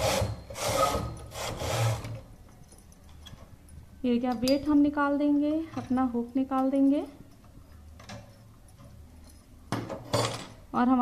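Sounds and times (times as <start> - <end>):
knitting machine carriage sliding: 0.0 - 2.2.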